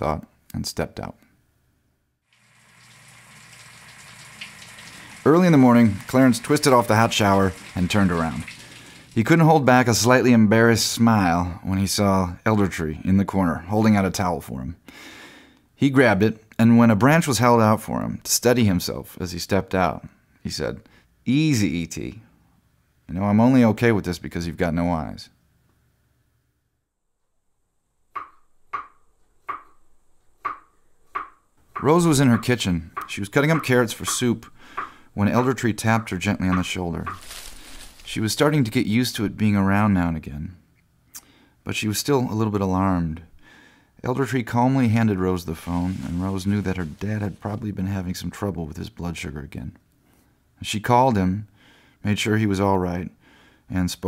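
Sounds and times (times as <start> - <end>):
shower water spraying: 2.3 - 9.2.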